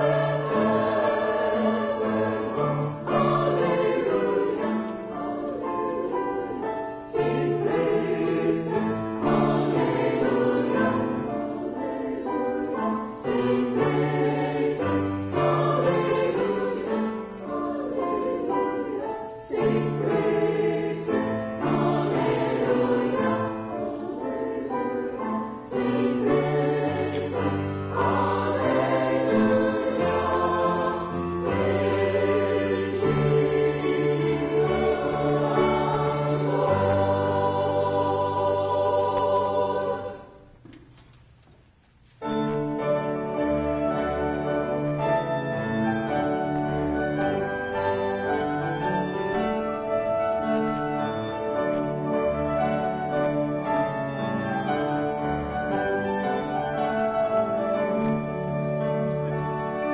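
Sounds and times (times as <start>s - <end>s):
mixed choir singing in parts: 0.0s - 41.0s, 44.2s - 59.9s.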